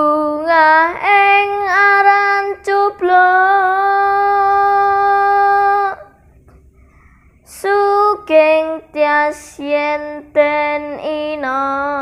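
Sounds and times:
boy singing unaccompanied: 0.0 - 6.1, 7.5 - 12.0.

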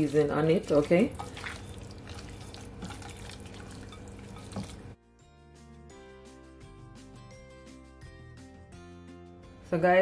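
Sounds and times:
hands squelching raw chicken: 0.0 - 5.0.

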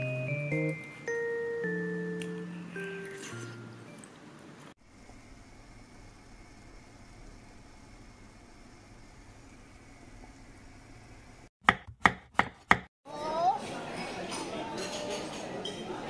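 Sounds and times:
pot simmering hiss: 4.8 - 11.5.

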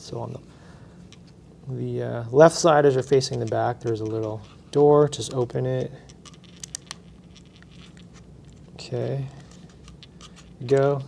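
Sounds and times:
handling clicks and scratches: 2.9 - 11.0.

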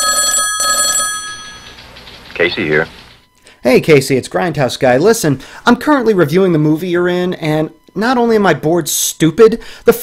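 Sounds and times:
telephone bell ringing: 0.0 - 1.8.

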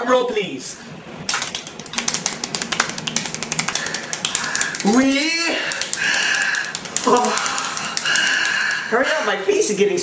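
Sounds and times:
men imitating drum roll vocally: 2.0 - 8.9.

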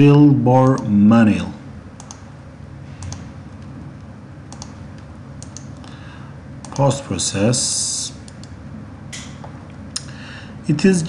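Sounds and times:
low background hum: 0.0 - 11.0
computer mouse clicks: 2.0 - 2.3, 4.5 - 5.8, 6.6 - 6.9, 8.3 - 8.6.

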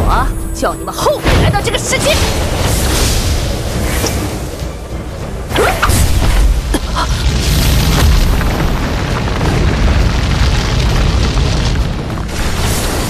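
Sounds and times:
dramatic background music: 0.0 - 13.0
deep rumbling explosion boom: 1.2 - 13.0.

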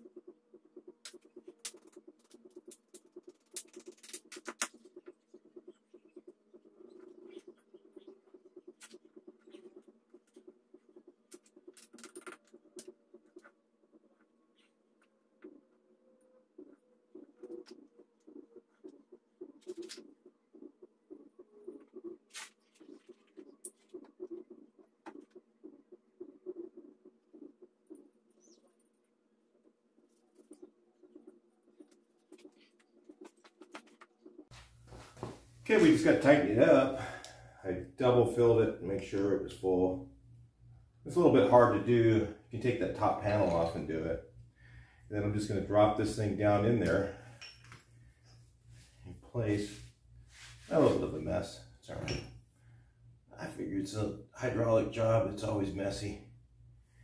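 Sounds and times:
low steady hum: 0.0 - 57.0.

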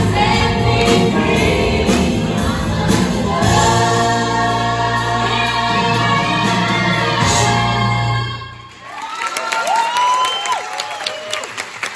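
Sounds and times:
audience cheering and applauding: 8.6 - 11.9.

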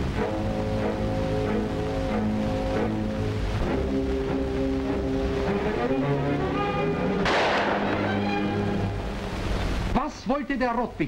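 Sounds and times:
orchestral music with held chords: 0.0 - 9.9
sudden loud crash: 7.2 - 8.3.

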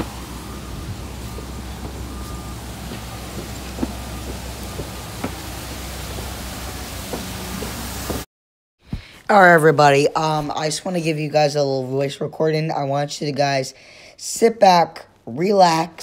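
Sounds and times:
waterfall rushing into pond: 0.0 - 2.0, 2.7 - 8.2
low hum: 0.0 - 8.2
faint repeated beep: 0.4 - 5.0.

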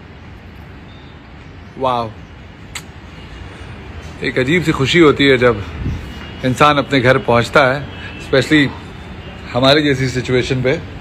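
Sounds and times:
distant city traffic hum: 0.0 - 11.0.

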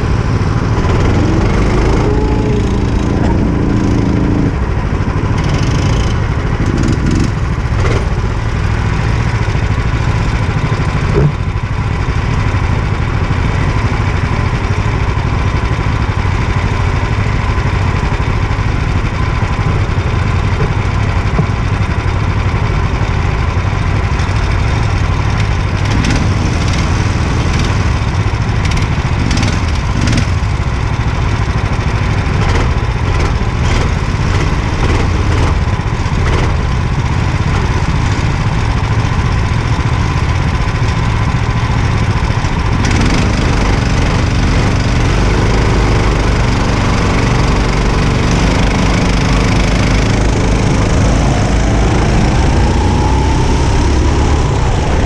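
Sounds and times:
go-kart engines idling and revving: 0.0 - 55.0.

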